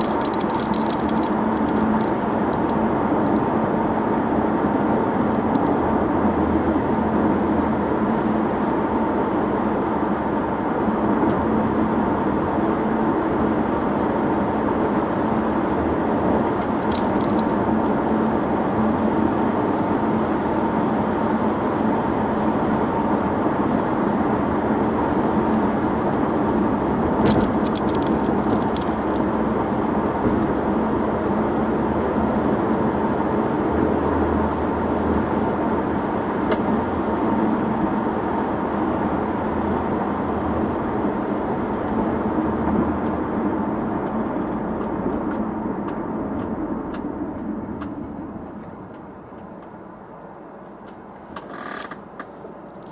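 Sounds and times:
rapid clicking: 0.0s - 3.4s, 16.5s - 17.6s, 27.2s - 29.2s
car road and engine noise: 0.0s - 52.9s.

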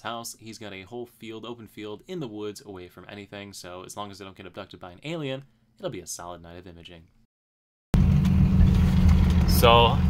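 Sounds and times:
truck engine and tyres rumbling: 8.0s - 10.0s.

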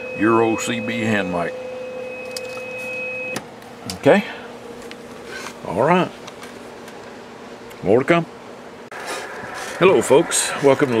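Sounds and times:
two-tone test signal: 0.0s - 3.4s.

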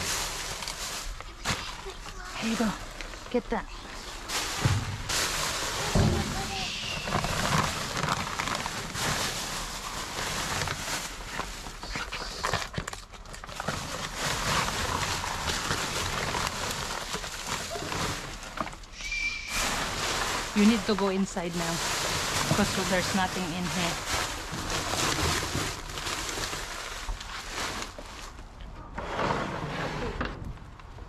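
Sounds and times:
plastic bags and paper rustling: 0.0s - 31.0s.

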